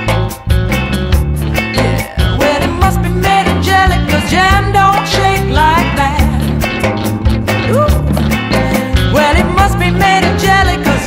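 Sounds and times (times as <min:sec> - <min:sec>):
bass line: 0:00.0 - 0:11.0
guitar: 0:00.0 - 0:11.0
drum beat: 0:00.1 - 0:10.9.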